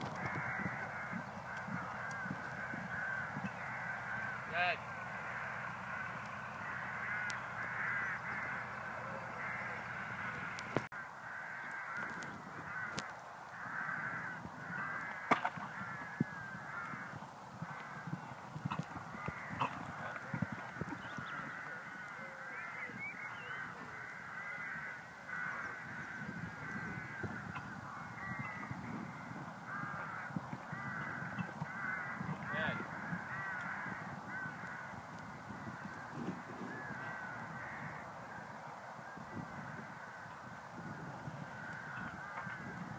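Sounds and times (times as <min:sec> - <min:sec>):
chorus of bird calls: 0:00.0 - 0:42.9.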